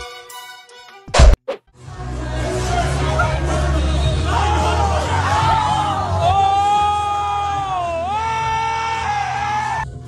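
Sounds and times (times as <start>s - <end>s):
loud thunk: 1.1s - 1.4s
background music: 1.8s - 10.0s.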